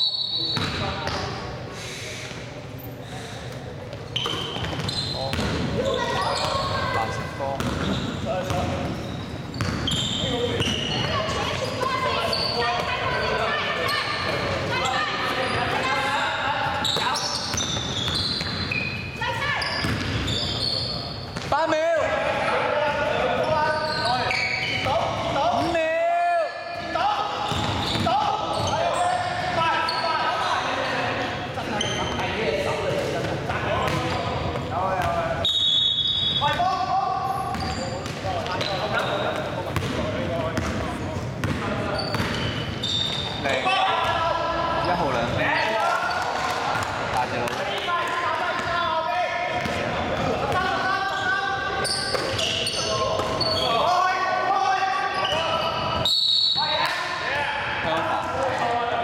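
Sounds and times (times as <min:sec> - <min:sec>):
players' voices echoing: 0:00.0 - 0:59.0.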